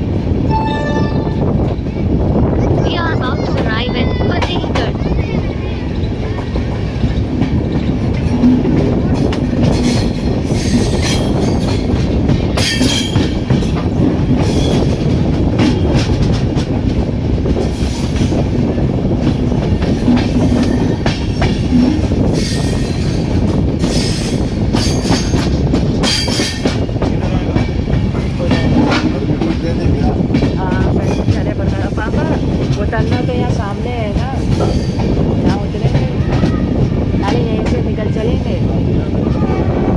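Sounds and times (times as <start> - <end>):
train coaches rumbling: 0.0 - 39.9
wheels clacking over rail joints: 4.3 - 38.1.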